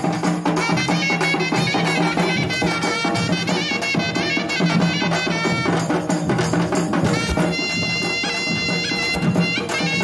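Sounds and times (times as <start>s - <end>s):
steady drumming: 0.0s - 10.0s
held wind instrument tone: 0.6s - 6.3s, 6.9s - 10.0s
wavering folk melody: 0.7s - 10.0s.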